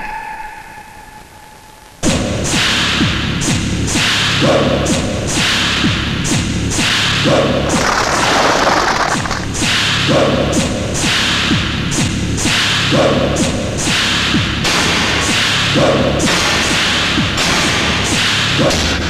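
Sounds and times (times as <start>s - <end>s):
action music track: 2.0s - 19.0s.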